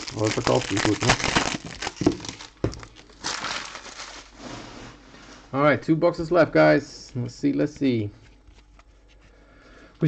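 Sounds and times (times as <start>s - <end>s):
cards rustling: 0.0s - 4.4s, 7.0s - 9.4s.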